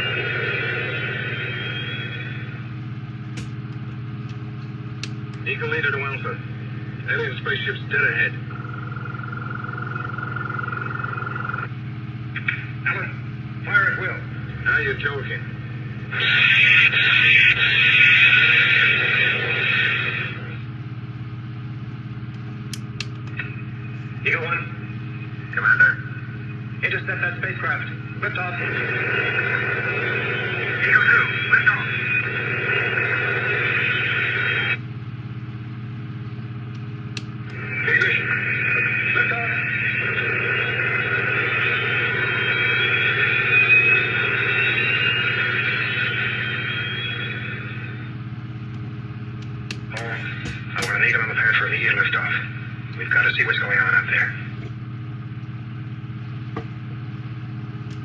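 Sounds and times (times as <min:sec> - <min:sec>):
rising whine: 0:00.0 - 0:58.0
steady low hum: 0:00.0 - 0:58.0.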